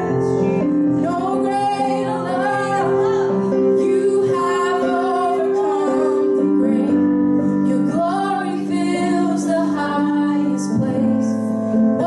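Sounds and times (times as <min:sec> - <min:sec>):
piano chords: 0:00.0 - 0:12.0
woman singing: 0:00.0 - 0:12.0.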